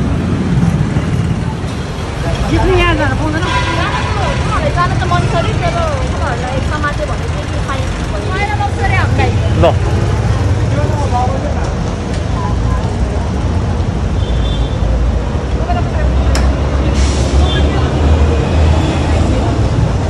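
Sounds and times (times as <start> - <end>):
motorcycle engines rumbling: 0.0 - 20.0
people chattering: 0.0 - 20.0.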